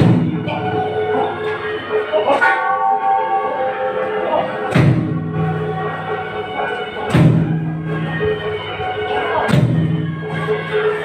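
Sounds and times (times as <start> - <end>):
background music: 0.0 - 11.0
temple bell ringing: 2.3 - 6.7
deep drum boom: 4.7 - 5.4.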